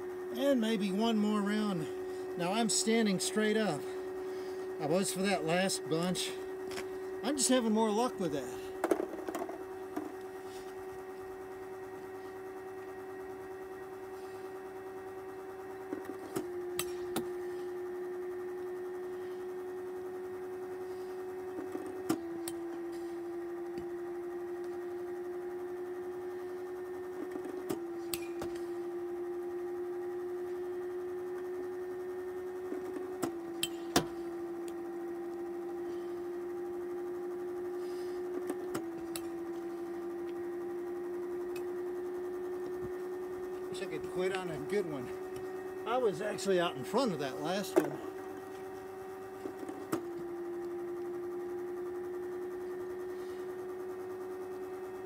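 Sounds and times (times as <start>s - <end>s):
pitching machine motor humming: 0.0s - 55.0s.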